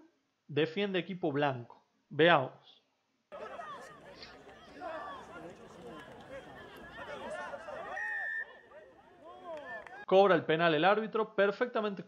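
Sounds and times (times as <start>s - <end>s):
faint players' voices calling: 3.3s - 10.1s.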